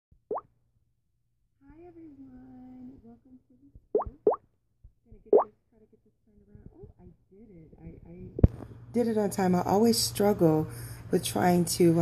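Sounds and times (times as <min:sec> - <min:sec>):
woman speaking a greeting: 0:01.6 - 0:03.8, 0:05.1 - 0:08.4
rising bloop: 0:03.9 - 0:04.4.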